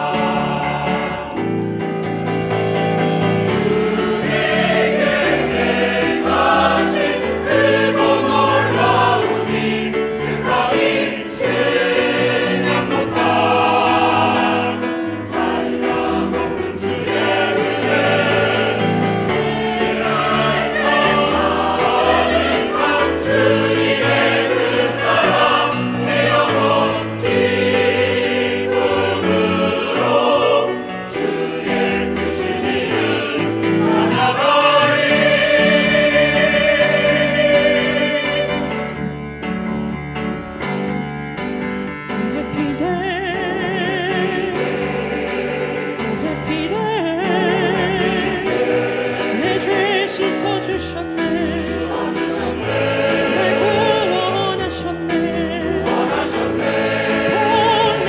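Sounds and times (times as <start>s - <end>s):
choir singing a hymn: 0.0s - 39.3s, 42.2s - 58.0s.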